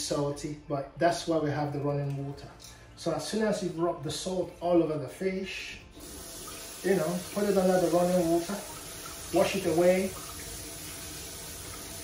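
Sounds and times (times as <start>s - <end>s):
tap water splashing: 6.1s - 12.0s.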